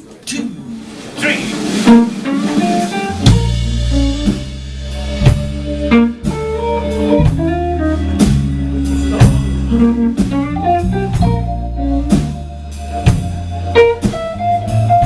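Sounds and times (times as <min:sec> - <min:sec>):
blues band playing: 0:00.0 - 0:15.0.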